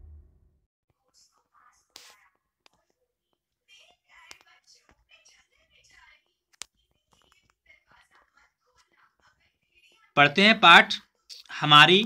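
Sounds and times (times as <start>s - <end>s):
low intro sound: 0.0s - 0.6s
soft clicks near microphone: 4.2s - 4.6s.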